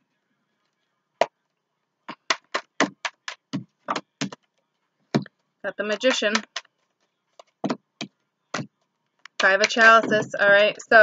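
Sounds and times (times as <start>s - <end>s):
cards being shuffled: 2.1s - 7.8s.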